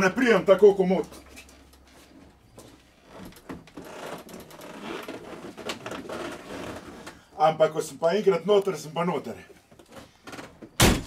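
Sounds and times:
rustling and scuffing of climbing: 0.8 - 7.2.

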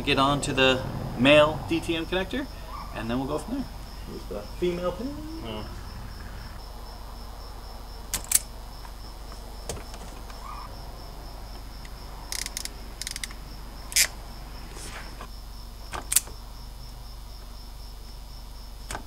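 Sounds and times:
faint high pulsing chirp: 1.2 - 7.0.

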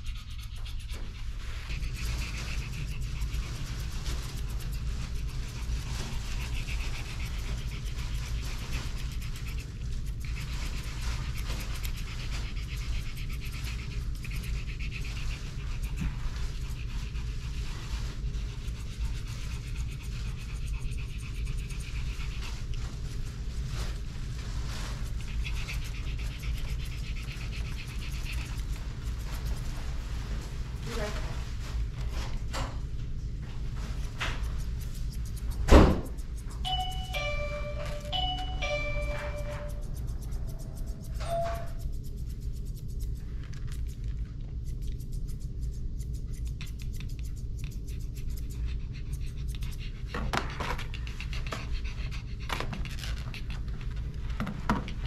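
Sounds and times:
dog panting: 0.0 - 55.0
steady low hum: 0.0 - 55.0.

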